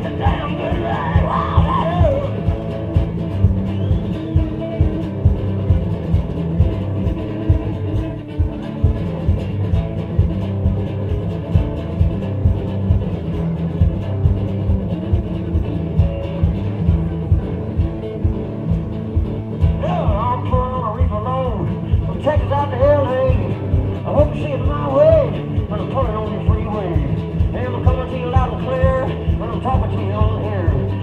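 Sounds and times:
amplified guitar riff: 0.0 - 31.0
thumping foot-stomp beat: 0.0 - 31.0.

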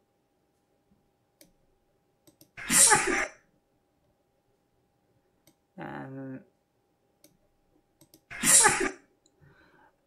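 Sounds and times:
computer mouse clicks: 1.4 - 1.6, 2.2 - 2.6, 5.4 - 5.6, 7.2 - 7.4, 8.0 - 8.3
man sneezing: 2.6 - 3.4, 8.3 - 9.0.

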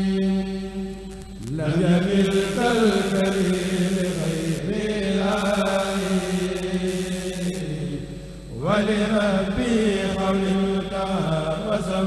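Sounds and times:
men chanting together: 8.6 - 12.0.

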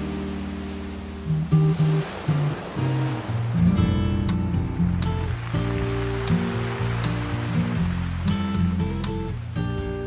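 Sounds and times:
classical guitar plucked notes: 0.0 - 10.0
ocean waves on a beach: 0.0 - 10.0.

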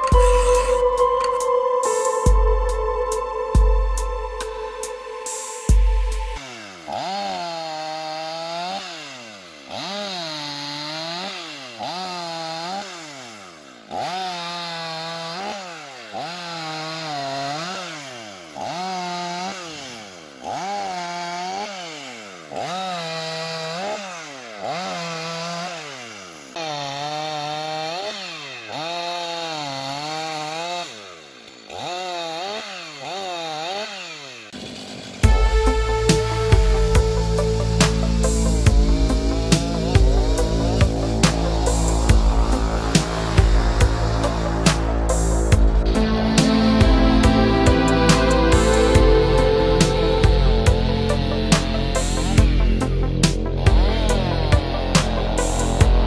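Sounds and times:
loud music with heavy beat: 0.0 - 6.4, 35.2 - 56.0
chainsaw cutting log: 4.4 - 56.0.

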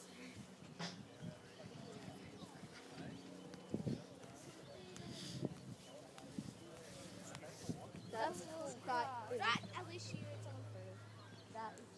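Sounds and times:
faint chatter of voices: 0.0 - 11.9.

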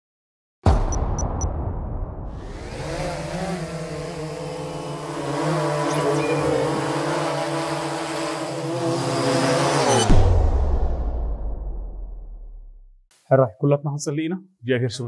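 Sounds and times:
drone propellers humming: 2.4 - 10.2.

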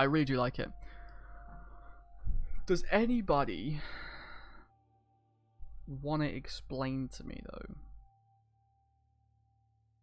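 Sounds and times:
man speaking: 0.0 - 0.8, 2.6 - 3.9, 5.9 - 7.8.

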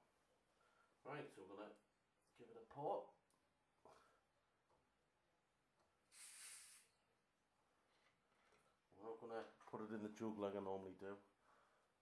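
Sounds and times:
gas hissing from bottle: 6.1 - 7.0.

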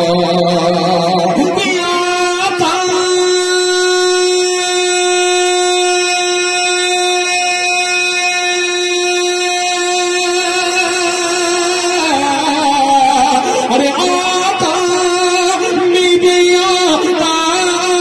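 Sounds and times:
man singing through a microphone: 0.0 - 18.0.

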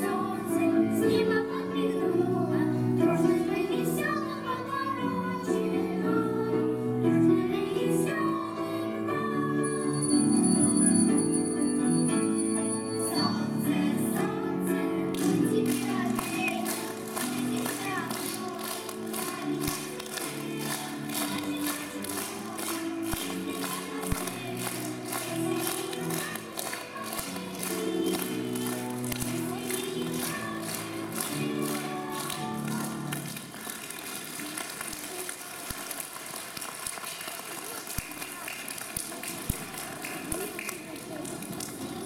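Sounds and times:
piano accompaniment: 0.0 - 34.2
children's choir singing: 0.0 - 34.8
audience applause: 15.6 - 42.0.

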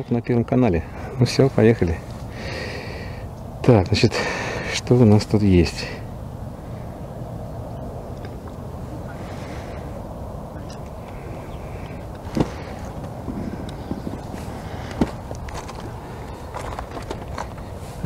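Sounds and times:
low background noise: 0.0 - 18.0.

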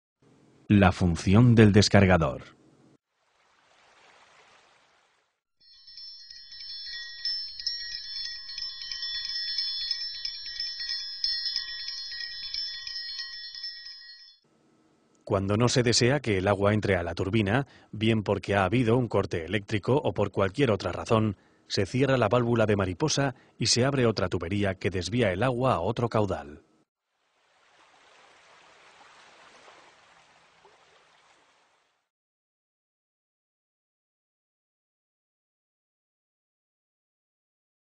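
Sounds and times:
shimmering chime-like ringing: 5.6 - 14.4.

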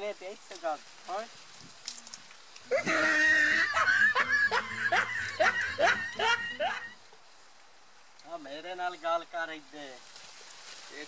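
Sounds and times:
person laughing: 2.7 - 7.0.

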